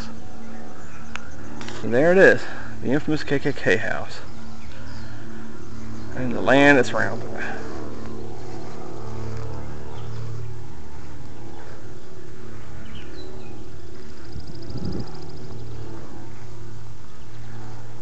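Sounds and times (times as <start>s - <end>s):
low rumble with hum: 0.0s - 18.0s
rapid bird trill: 0.0s - 18.0s.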